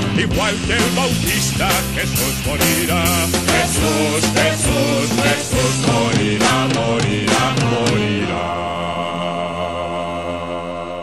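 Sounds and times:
voices and instruments holding chord: 0.1s - 11.0s.

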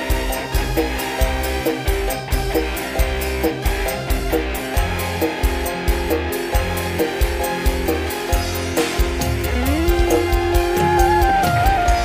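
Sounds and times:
instrumental band music: 0.0s - 12.0s.

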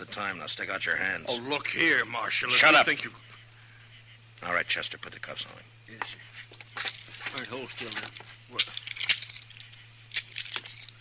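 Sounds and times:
steady low hum: 0.0s - 11.0s
handcuffs clicking and rattling: 6.8s - 11.0s.

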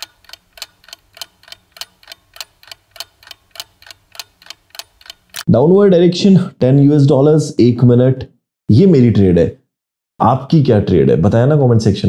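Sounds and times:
clock ticking: 0.0s - 5.5s.

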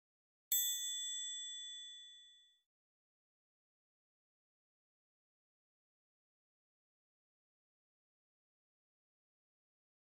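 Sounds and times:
bell-like chime: 0.5s - 2.6s.

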